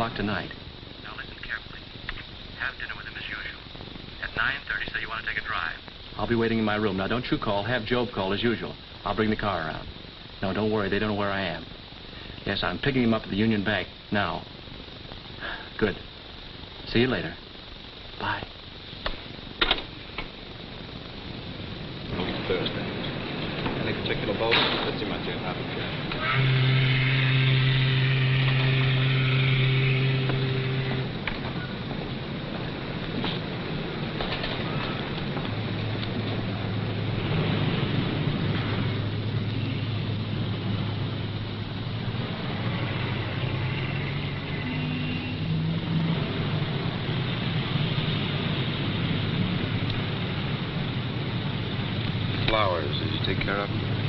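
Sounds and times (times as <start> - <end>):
car engine running: 25.1 - 32.0.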